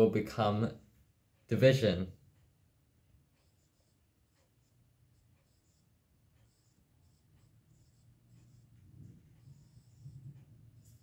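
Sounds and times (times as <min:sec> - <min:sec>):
low room hum: 0:00.0 - 0:11.0
stylus scratching on screen: 0:03.1 - 0:11.0.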